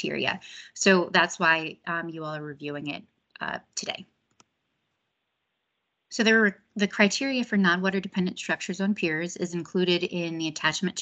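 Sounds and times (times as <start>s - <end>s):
computer mouse click: 4.3s - 4.5s.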